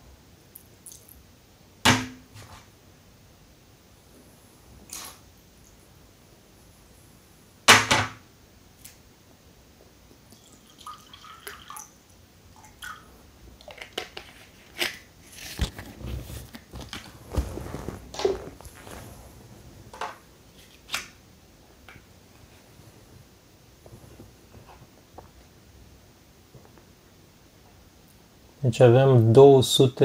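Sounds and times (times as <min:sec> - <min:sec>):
water pouring into a mug: 0:10.3 - 0:11.9
plastic bottle crinkling: 0:13.6 - 0:19.1.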